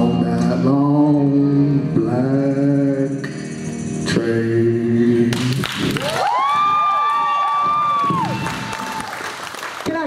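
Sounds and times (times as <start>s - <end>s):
audience applauding and cheering: 5.6s - 10.0s
rising whoops: 6.0s - 9.4s.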